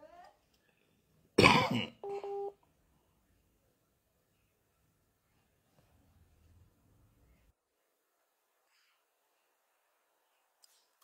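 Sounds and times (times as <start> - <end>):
man coughing: 1.4 - 2.0.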